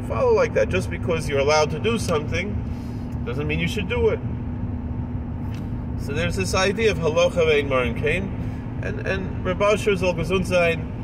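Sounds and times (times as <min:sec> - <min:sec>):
constant hum: 0:00.0 - 0:11.0
road and engine rumble in car: 0:00.0 - 0:11.0.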